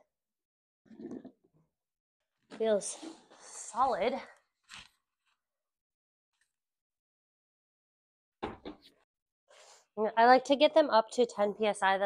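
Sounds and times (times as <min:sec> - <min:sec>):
soft knock: 0:08.4 - 0:08.8.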